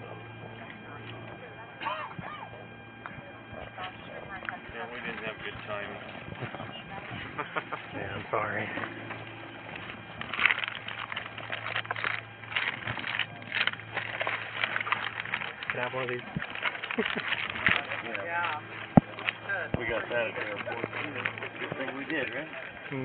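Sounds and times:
voices talking: 0.0 - 23.0
plastic bags rustling: 4.1 - 23.0.

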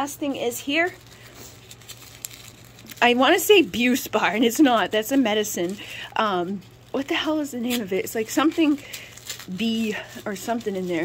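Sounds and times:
pouch rustling and crinkling: 0.7 - 11.0.

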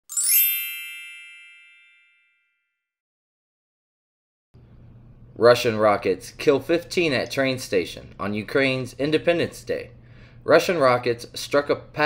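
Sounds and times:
bright chime: 0.0 - 2.6.

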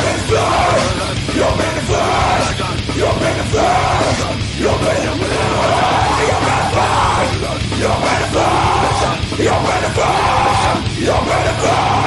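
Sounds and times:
heavy metal song: 0.0 - 12.0
man screaming metal vocals: 0.0 - 12.0.

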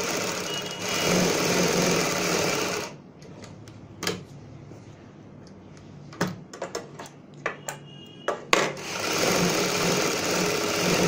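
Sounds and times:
sewing machine stitching: 0.0 - 3.0, 8.8 - 11.0.

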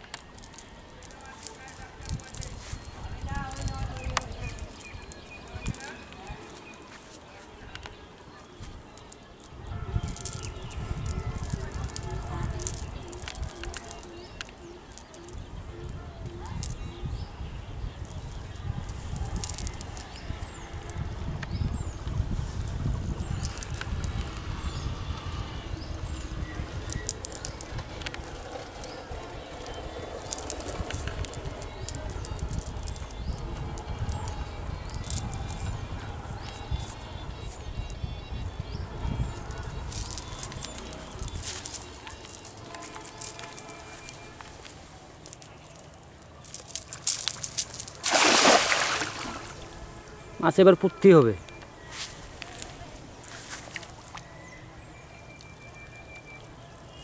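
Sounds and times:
birds chirping: 0.0 - 57.0
wind on microphone: 1.2 - 6.8, 9.5 - 44.6
net rustling: 46.5 - 49.7
water splashing: 46.9 - 49.8.

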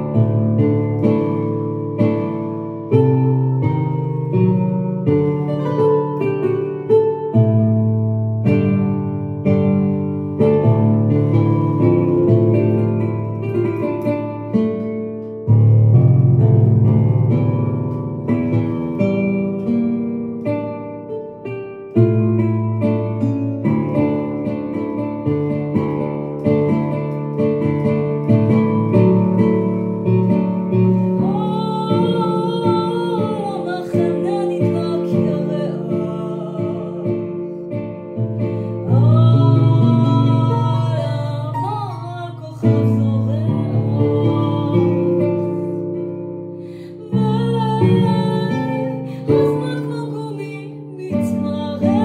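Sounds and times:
keyboard piano chords: 0.0 - 52.0
woman singing: 30.8 - 46.1, 46.7 - 52.0.

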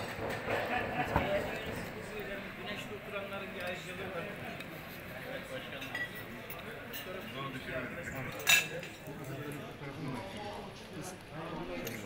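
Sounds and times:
murmur of voices: 0.0 - 12.0
cutlery clinking against plate: 5.6 - 7.5, 8.1 - 9.3.

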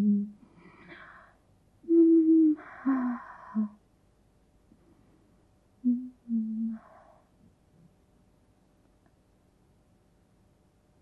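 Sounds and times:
woman humming mm-hm: 0.0 - 0.4, 1.8 - 3.8, 5.8 - 7.2
faint breath: 0.4 - 1.4, 2.6 - 3.8, 6.7 - 7.4.

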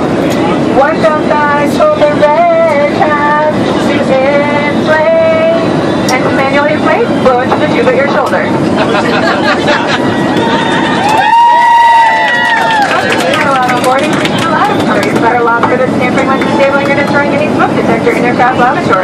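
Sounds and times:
airliner cabin drone: 0.0 - 19.0
women talking and calling out: 13.3 - 19.0.

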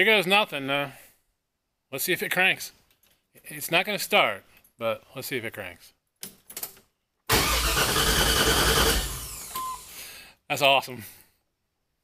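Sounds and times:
starter motor cranking engine: 7.3 - 9.9.

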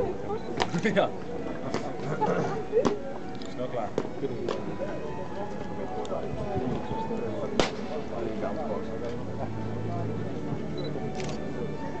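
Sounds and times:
onlookers chattering: 0.0 - 12.0
camera focus beep: 10.8 - 11.4
camera shutter clicks: 11.1 - 11.4.

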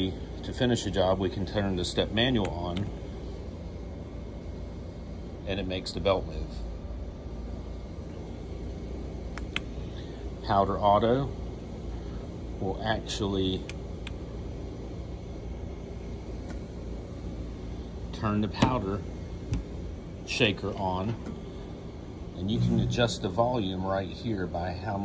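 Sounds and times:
dryer machine humming: 0.0 - 25.0.

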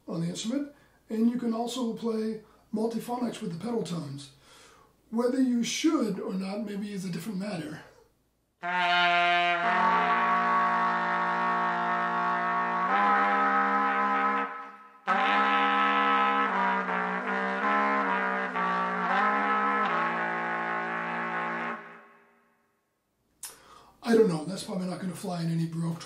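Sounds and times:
trumpet low pedal tones: 8.6 - 22.1.

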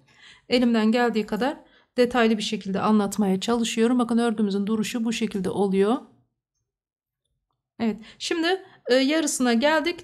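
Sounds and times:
woman speaking: 0.5 - 6.2, 7.8 - 10.0.

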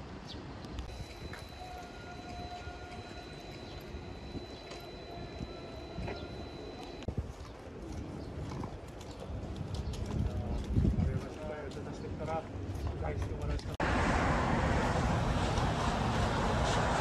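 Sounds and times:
traffic rumble: 0.0 - 17.0
faint high-pitched tone: 0.9 - 7.1.

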